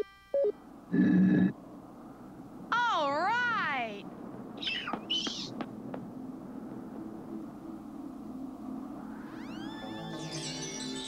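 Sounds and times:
low steady rumble: 0.0 - 9.8
rising swell into music: 6.4 - 11.0.

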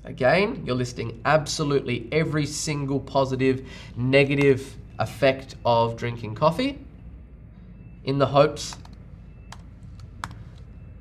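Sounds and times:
faint low hum: 0.0 - 11.0
keyboard keystroke clicks: 8.7 - 10.4.

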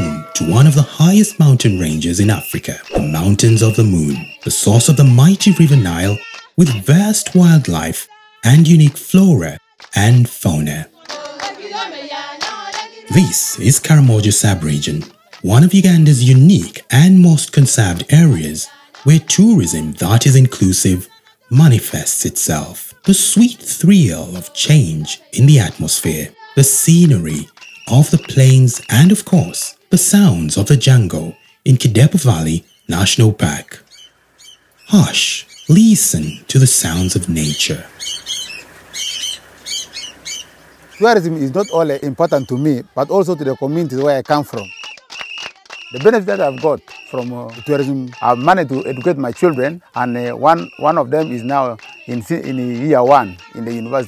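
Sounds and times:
small birds calling: 0.0 - 8.8, 22.9 - 54.0
group of voices singing: 0.0 - 32.2, 42.2 - 54.0
sharp hand claps: 2.8 - 7.9, 8.8 - 10.3, 11.0 - 11.6, 12.4 - 13.3, 14.6 - 15.8, 27.0 - 29.5, 43.6 - 54.0.

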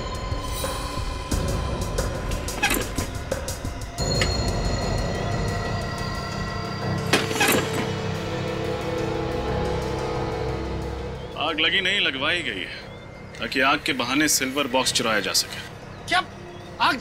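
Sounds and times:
tense dramatic music: 0.0 - 17.0.

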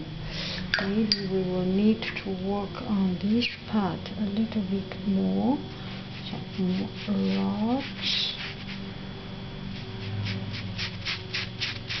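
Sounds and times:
steady low hum: 0.0 - 12.0
brush swishing on paper: 5.8 - 9.0, 9.7 - 12.0.

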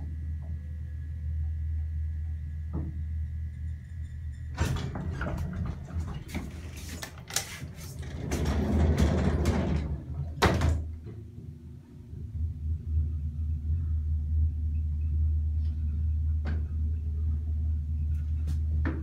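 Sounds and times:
elevator running hum: 0.0 - 19.0
elevator doors clattering and clicking: 4.5 - 11.4
elevator door bang: 4.6 - 6.2.

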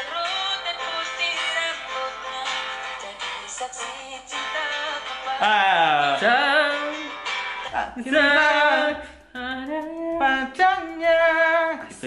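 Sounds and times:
pop ballad singing: 0.0 - 12.0.

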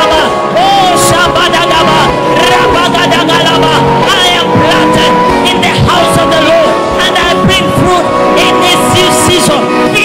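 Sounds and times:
voices praying and calling out: 0.0 - 10.0
worship music with held chords: 0.0 - 10.0.

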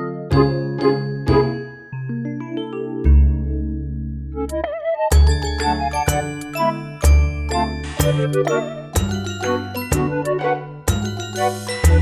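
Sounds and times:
tinkling bell-like tune: 0.3 - 3.6, 5.1 - 12.0.

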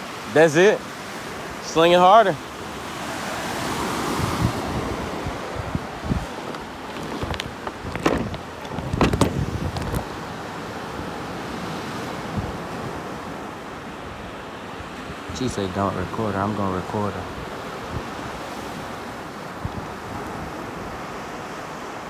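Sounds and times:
surf breaking on a beach: 0.0 - 22.0
wind buffeting microphone: 2.5 - 16.1, 17.2 - 21.5
knocks and rustles: 6.4 - 10.1.

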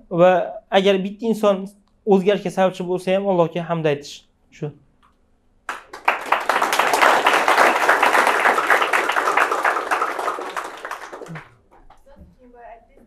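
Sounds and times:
audience applauding: 5.7 - 11.6.

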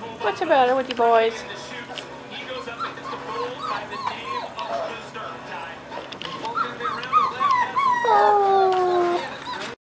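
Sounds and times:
puppies whimpering: 2.3 - 5.2, 5.9 - 9.8
puppy howling: 2.5 - 5.0, 5.9 - 9.8.

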